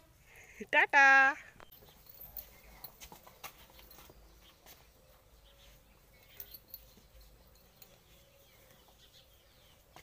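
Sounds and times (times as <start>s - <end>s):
hooves knocking on ground: 1.6s - 10.0s.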